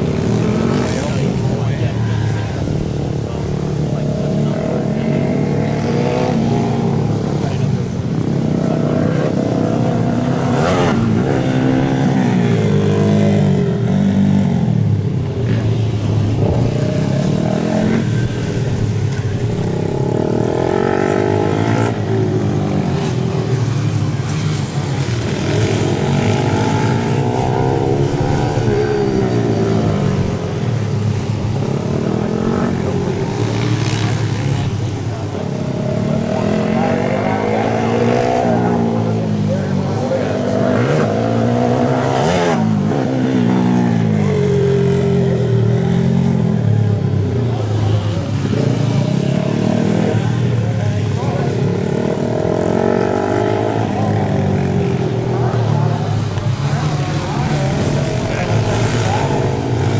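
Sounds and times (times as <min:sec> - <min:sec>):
dirt bike engine revving: 0:00.0 - 0:59.9.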